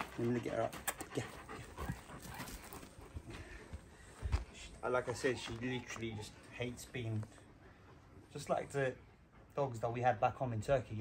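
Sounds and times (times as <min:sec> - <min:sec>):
dog panting: 0:00.0 - 0:03.7, 0:05.1 - 0:10.4.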